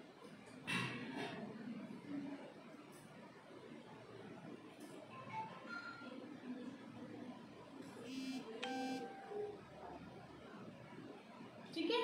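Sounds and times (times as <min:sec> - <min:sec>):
high beeping electronic jingle: 0:08.1 - 0:09.5.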